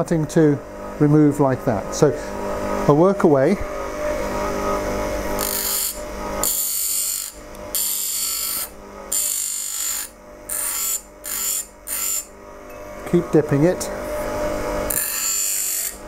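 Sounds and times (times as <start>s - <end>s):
bench grinder running: 0.0s - 16.0s.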